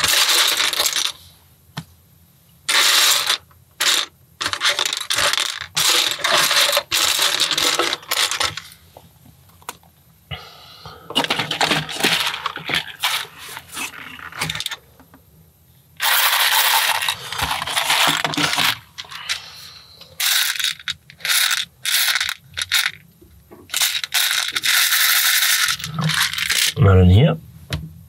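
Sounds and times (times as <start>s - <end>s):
plastic bricks clattering: 0.0s - 1.2s, 2.7s - 8.8s, 11.1s - 14.8s, 16.0s - 19.4s, 20.2s - 23.0s, 23.6s - 26.8s.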